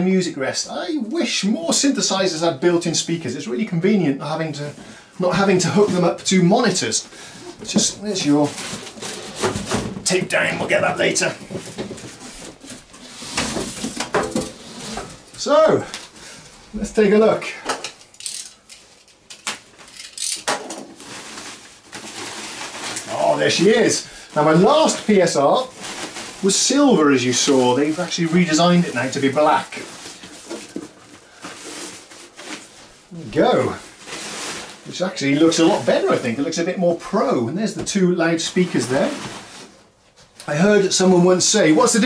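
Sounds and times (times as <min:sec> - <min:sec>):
plastic wrap rustling: 0:01.0 - 0:42.0
soft handling sounds: 0:04.5 - 0:36.7
cardboard box scraping: 0:10.4 - 0:15.3.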